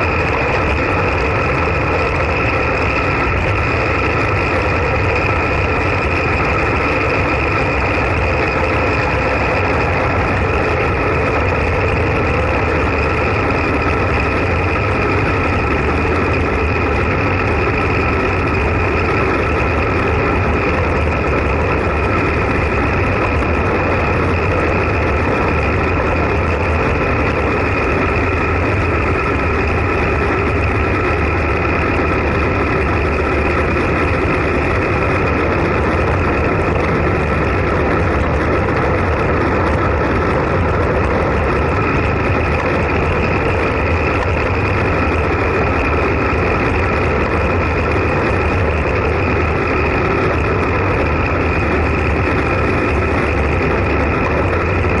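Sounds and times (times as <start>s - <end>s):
bicycle tyre and road noise: 0.0s - 55.0s
faint steady whine: 0.0s - 55.0s
wind rush on microphone: 0.0s - 55.0s.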